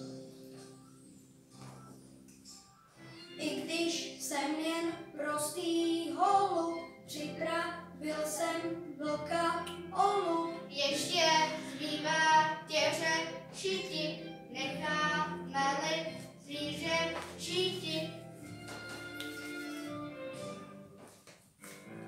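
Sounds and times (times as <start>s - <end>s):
children singing: 7.7s - 18.1s.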